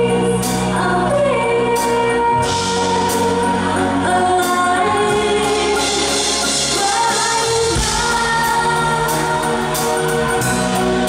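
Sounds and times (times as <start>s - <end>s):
backing singer: 0.0s - 11.0s
live band keyboard and drums: 0.0s - 11.0s
woman singing a pop ballad: 0.0s - 11.0s.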